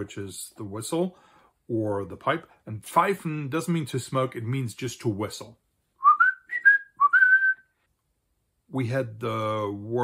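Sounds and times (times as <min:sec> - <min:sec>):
man whistling a tune: 0:06.0 - 0:07.8.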